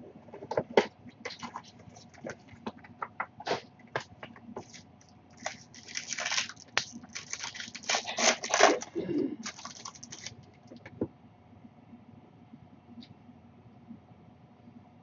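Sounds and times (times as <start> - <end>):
wrapper crackles: 4.6 - 10.8
wrapper crinkling and tearing: 4.6 - 10.8.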